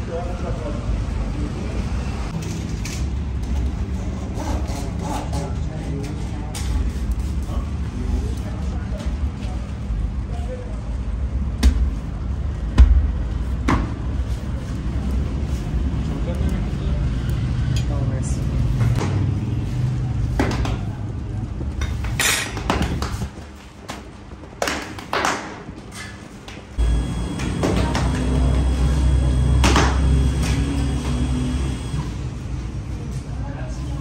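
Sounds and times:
low rumble of running machinery: 0.0 - 34.0.

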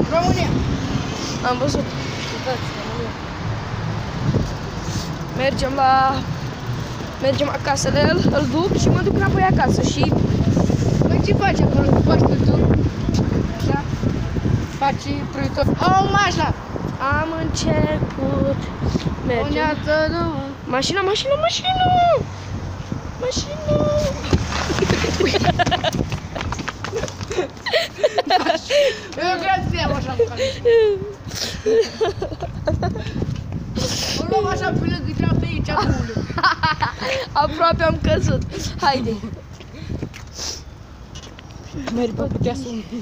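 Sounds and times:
city street background noise: 0.0 - 43.0.

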